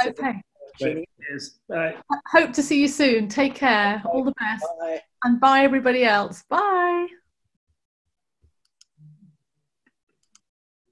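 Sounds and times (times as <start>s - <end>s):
woman speaking: 0.0s - 0.4s, 2.1s - 7.2s.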